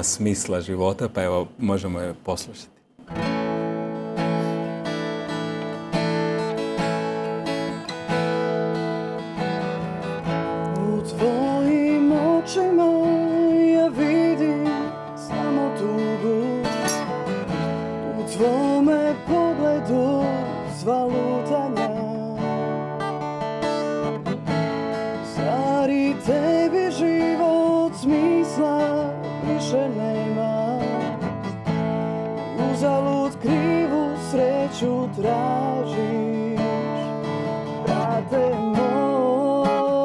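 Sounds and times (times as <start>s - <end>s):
acoustic guitar strumming: 2.9s - 40.0s.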